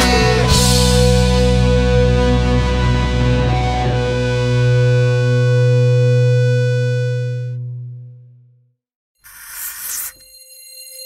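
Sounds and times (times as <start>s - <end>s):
electric guitars and bass chord: 0.0s - 8.6s.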